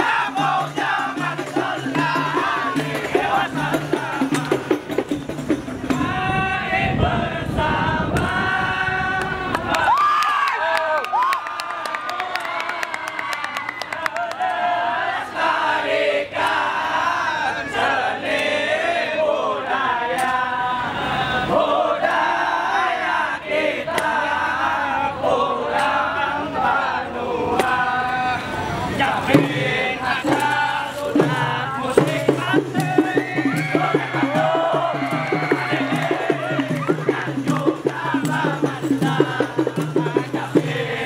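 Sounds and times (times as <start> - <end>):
percussive strikes: 0.0 - 6.1, 29.3 - 40.9
choir-like chanting voices: 0.0 - 41.0.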